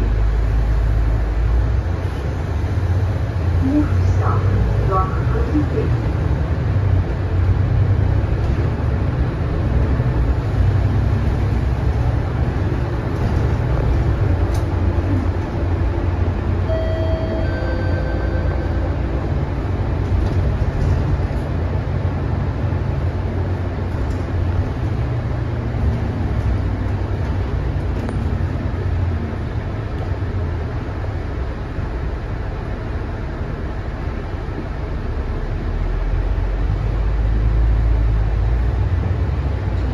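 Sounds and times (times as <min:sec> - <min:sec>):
bus diesel engine drone: 0:00.0 - 0:39.9
tyres on the road: 0:00.0 - 0:39.9
faint short tones: 0:16.7 - 0:18.9.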